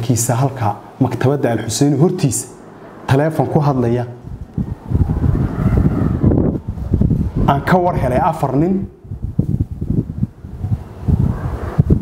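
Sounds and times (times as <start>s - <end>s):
wind buffeting microphone: 2.9s - 12.0s.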